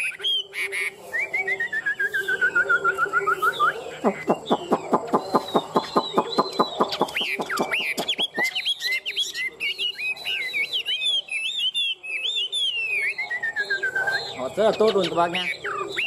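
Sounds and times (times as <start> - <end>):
bird singing whistled phrases: 1.1 - 16.0.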